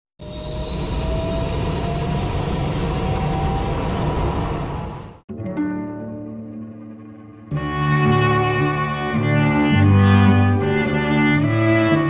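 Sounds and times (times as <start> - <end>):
jet engine running: 0.2 - 5.2.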